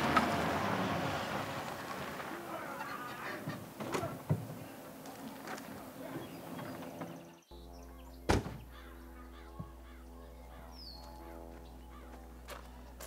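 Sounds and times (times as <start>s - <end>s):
low hum with held tones: 2.6s - 13.0s
loud sharp thunk: 8.3s - 8.7s.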